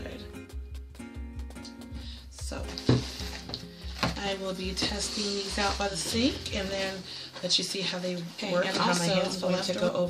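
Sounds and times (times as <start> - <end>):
background music with low beat: 0.0 - 10.0
plastic bottle handling noise: 2.7 - 7.8.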